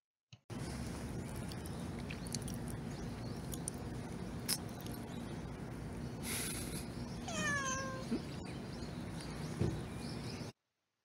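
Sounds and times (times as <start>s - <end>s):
cat meowing: 7.2s - 8.2s.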